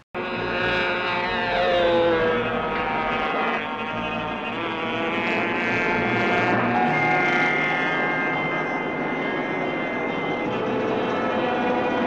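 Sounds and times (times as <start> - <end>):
model airplane engine buzzing: 0.2 - 12.0.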